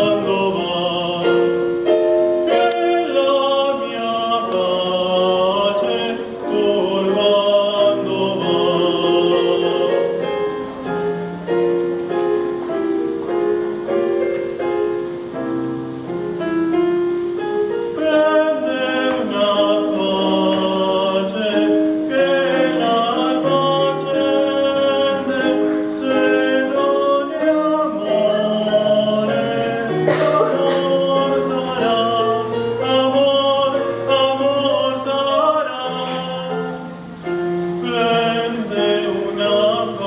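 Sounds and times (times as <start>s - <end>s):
man singing with vibrato: 0.0s - 11.9s, 17.4s - 40.0s
piano accompaniment: 0.0s - 40.0s.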